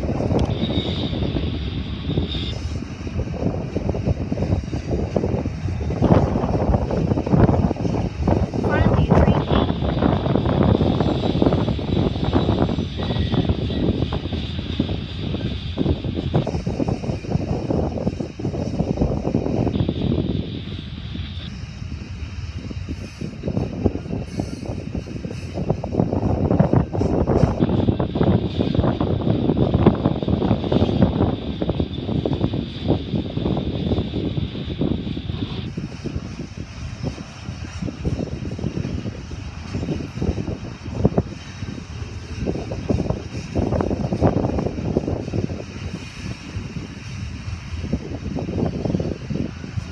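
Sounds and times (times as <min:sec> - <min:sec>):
rail clicks and clacks: 0:00.0 - 0:49.9
train wheels rumbling on rail: 0:00.0 - 0:49.9.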